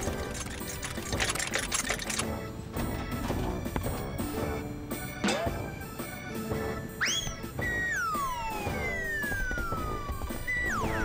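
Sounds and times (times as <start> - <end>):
background music: 0.0 - 11.0
cartoon whistle glides: 7.0 - 9.8.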